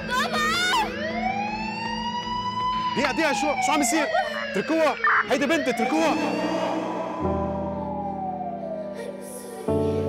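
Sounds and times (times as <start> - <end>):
siren wail rising in pitch: 0.4 - 9.3.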